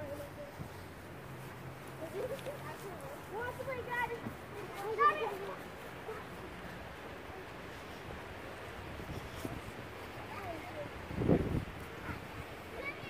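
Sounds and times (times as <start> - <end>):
faint outdoor background: 0.0 - 13.0.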